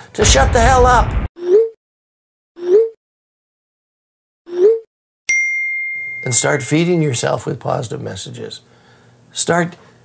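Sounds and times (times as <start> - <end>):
rising pop: 0.2 - 1.3
bright chime ringing: 5.3 - 7.3.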